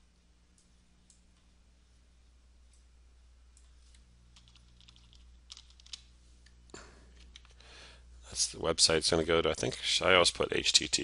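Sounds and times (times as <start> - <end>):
steady low hum: 0.0 - 11.0
mouse and keyboard clicks: 4.4 - 6.0.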